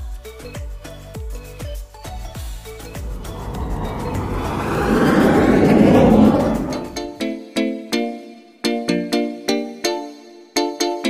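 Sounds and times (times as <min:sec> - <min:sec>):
jet plane flying past: 0:02.9 - 0:07.1.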